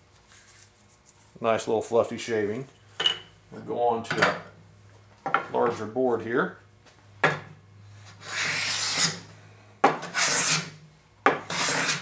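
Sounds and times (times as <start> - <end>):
hand plane shaving wood: 8.2 - 9.2, 10.1 - 10.7, 11.4 - 12.0.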